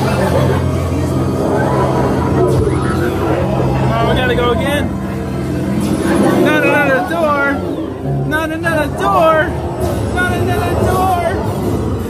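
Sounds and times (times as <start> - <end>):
loud low drone: 0.0 - 12.0.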